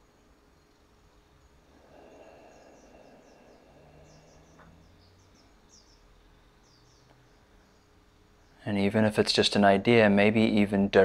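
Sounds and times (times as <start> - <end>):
faint high bird chirps: 0.0 - 8.7.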